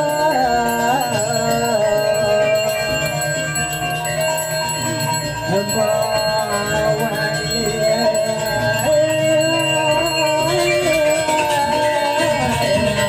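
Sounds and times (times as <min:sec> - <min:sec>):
slow devotional singing: 0:00.0 - 0:13.0
small bell ringing: 0:00.0 - 0:13.0.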